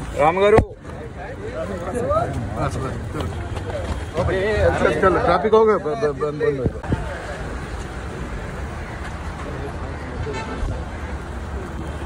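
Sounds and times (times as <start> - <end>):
faint voices: 0.0 - 12.0
street traffic: 0.0 - 12.0.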